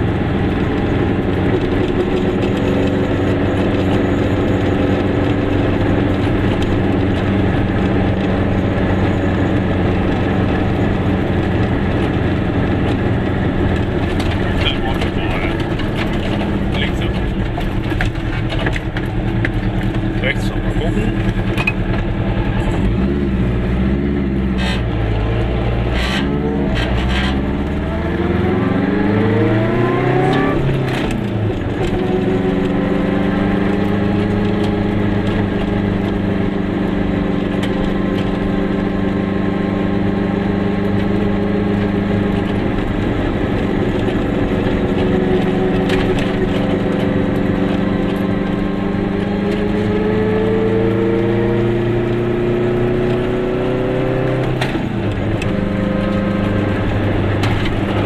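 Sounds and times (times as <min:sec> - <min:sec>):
car engine accelerating: 0:00.0 - 0:58.0.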